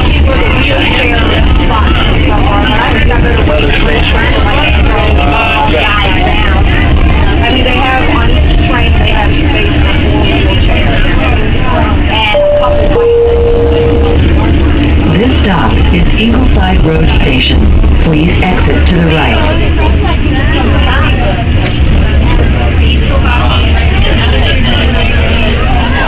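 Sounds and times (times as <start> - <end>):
indistinct voices: 0.0 - 26.0
light rail car rumble: 0.0 - 26.0
two-note chime: 12.4 - 14.3.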